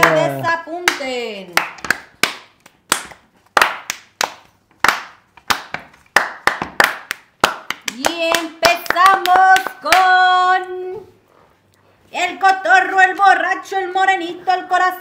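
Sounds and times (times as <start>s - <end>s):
hand clapping: 0.0s - 10.2s.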